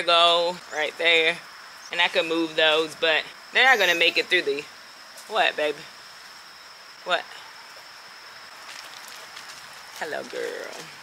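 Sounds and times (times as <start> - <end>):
woman speaking: 0.0 - 4.7, 5.3 - 5.9, 7.0 - 7.4, 10.0 - 11.0
high-pitched insect trill: 0.0 - 11.0.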